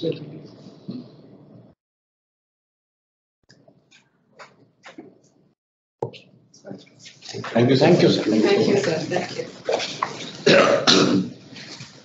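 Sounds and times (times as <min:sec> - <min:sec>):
person clearing throat: 0:10.3 - 0:11.5.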